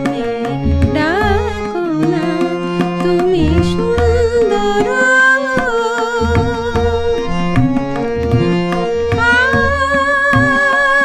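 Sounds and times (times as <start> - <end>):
woman singing: 0.0 - 7.3, 9.0 - 11.0
tabla playing: 0.0 - 11.0
sustained instrument tones: 7.2 - 9.8.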